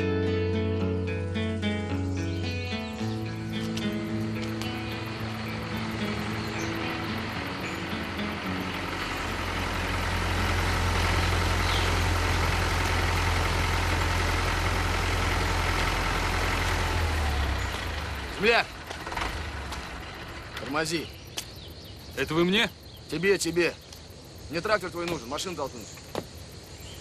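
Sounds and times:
vehicle engine rumbling: 0:01.1 - 0:27.0.

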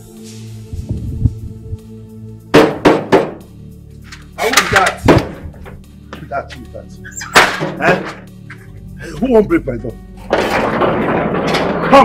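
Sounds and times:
metal gate rattling and scraping: 0:04.0 - 0:08.8, 0:10.1 - 0:12.0.

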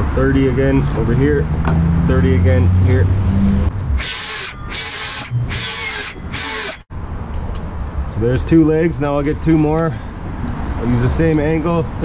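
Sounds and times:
circular saw cutting wood: 0:03.8 - 0:06.9.

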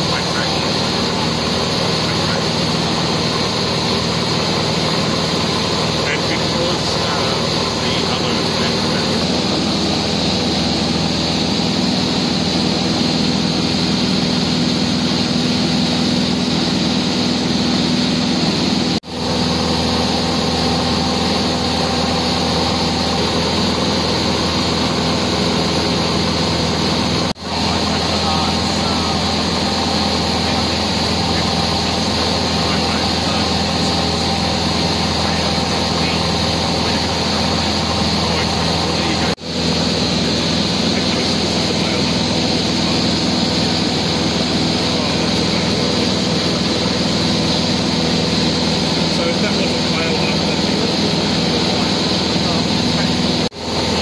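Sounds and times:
light aircraft engine droning: 0:00.0 - 0:54.0.

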